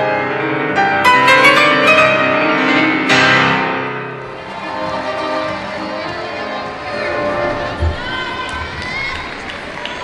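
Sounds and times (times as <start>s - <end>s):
arena crowd noise: 4.0s - 10.0s.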